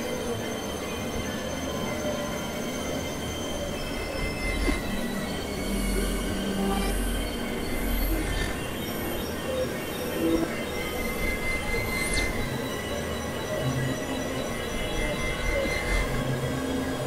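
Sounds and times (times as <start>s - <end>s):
low hum: 0.0s - 17.0s.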